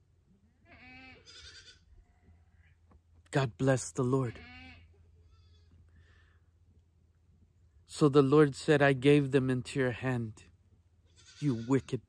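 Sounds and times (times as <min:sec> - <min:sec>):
goat bleating: 0:00.6 - 0:02.7, 0:04.2 - 0:05.8, 0:11.0 - 0:12.0.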